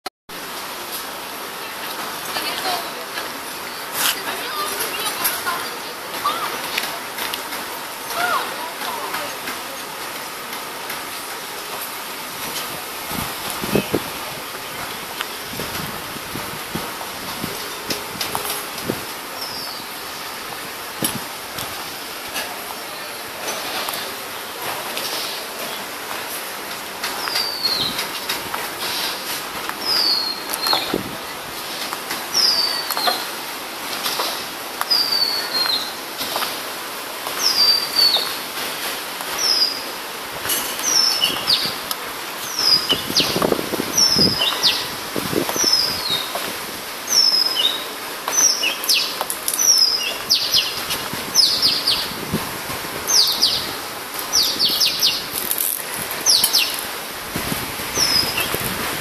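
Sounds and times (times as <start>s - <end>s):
bird chirping: 53.1s - 53.7s, 54.3s - 55.3s, 56.2s - 56.8s.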